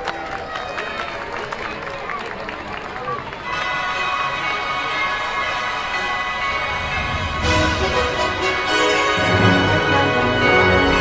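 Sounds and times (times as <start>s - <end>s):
spectators chatter: 0.0s - 11.0s
parade music: 3.4s - 11.0s.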